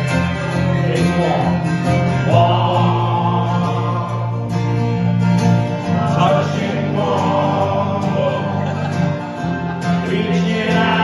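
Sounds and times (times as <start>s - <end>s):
crowd singing together: 0.0s - 11.0s
strummed acoustic guitars: 0.0s - 11.0s.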